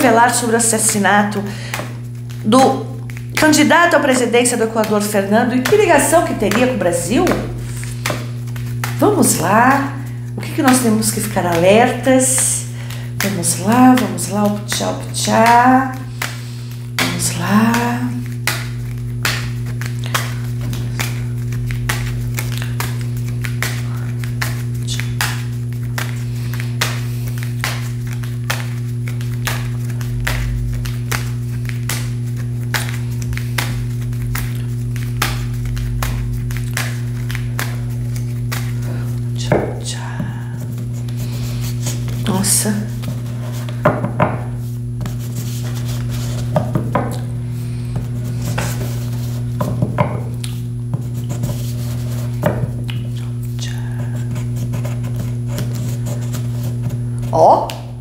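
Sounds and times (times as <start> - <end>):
steady low hum: 0.0 - 58.0
cards being shuffled: 0.3 - 57.9.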